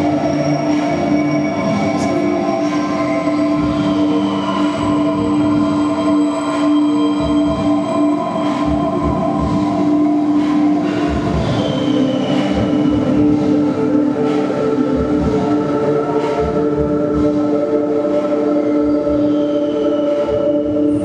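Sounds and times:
sustained drone tones: 0.0s - 21.0s.

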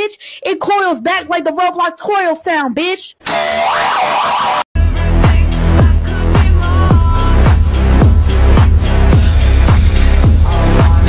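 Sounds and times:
bass-heavy electronic music: 4.5s - 11.0s.

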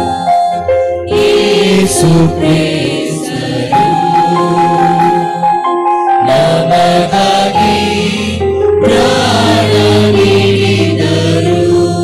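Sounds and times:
choir singing: 0.0s - 0.5s, 1.1s - 12.0s
instrumental accompaniment: 0.0s - 12.0s.

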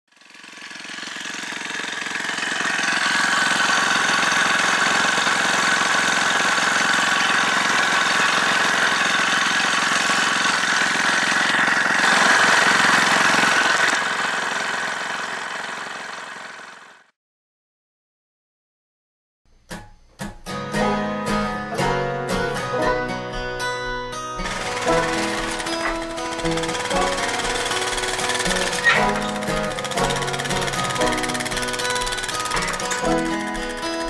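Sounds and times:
engine running: 0.1s - 17.1s, 24.4s - 34.0s.

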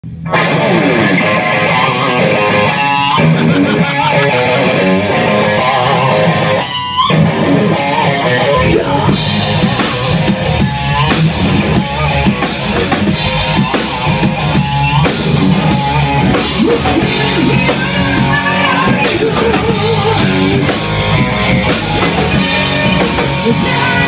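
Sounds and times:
bass guitar: 0.0s - 24.0s
drum kit: 0.0s - 24.0s
electric guitar: 0.0s - 24.0s.

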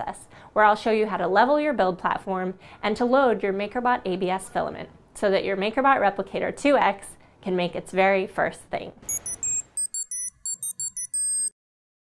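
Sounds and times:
high-pitched electronic bleeps: 9.1s - 11.5s.

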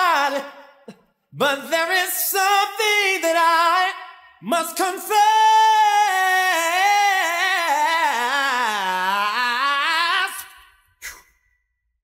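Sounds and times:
man singing a long note: 1.4s - 10.5s.

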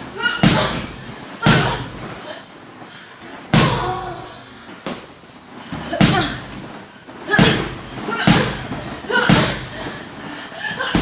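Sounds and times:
boxing gloves punching: 0.2s - 2.0s, 3.5s - 4.0s, 5.8s - 6.7s, 7.3s - 9.9s, 10.8s - 11.0s.

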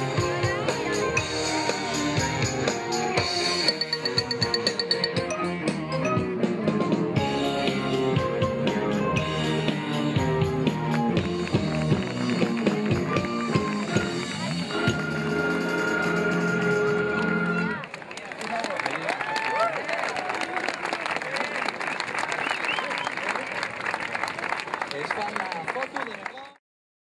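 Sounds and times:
scattered clapping: 10.8s - 15.0s, 16.9s - 26.6s
wind band with flutes and saxophone: 12.6s - 17.8s.

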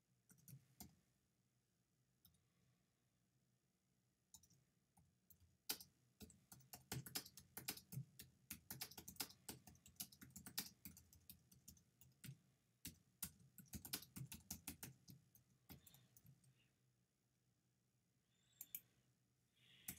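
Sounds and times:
computer keyboard typing: 0.3s - 1.0s, 5.3s - 16.5s.

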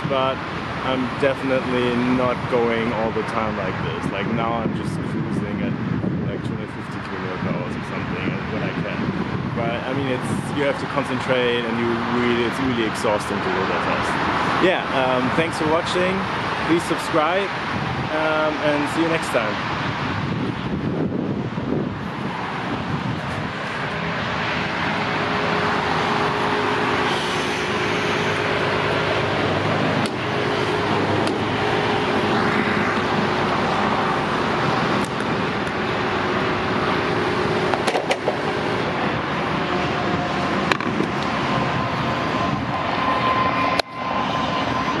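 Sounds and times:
car engine noise: 0.0s - 45.0s
road traffic: 0.0s - 45.0s
sharp clicks and knocks: 37.7s - 38.4s.

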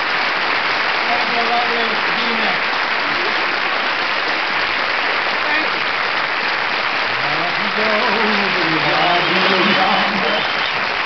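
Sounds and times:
studio audience applauding: 0.0s - 11.0s
man talking: 1.1s - 2.6s, 7.2s - 10.6s.

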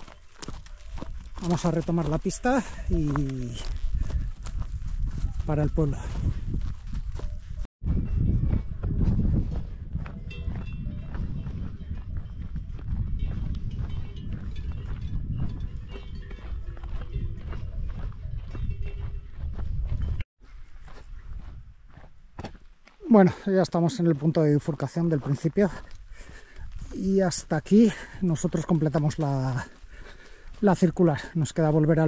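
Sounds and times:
wind rumble on microphone: 2.6s - 22.3s
cowbells clanking: 13.2s - 19.4s.

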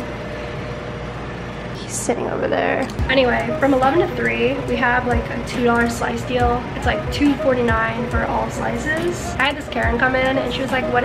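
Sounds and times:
kitchen machinery hum and hiss: 0.0s - 11.0s.

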